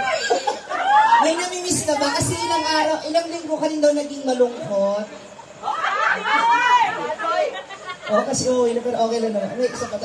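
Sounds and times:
people talking: 5.9 - 10.0.

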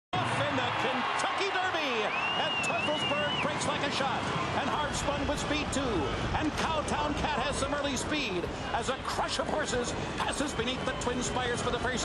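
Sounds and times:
crowd cheering and shouting: 0.2 - 12.0.

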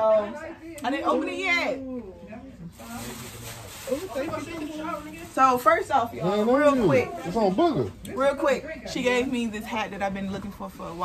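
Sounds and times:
gift packaging rustling: 2.7 - 6.0.

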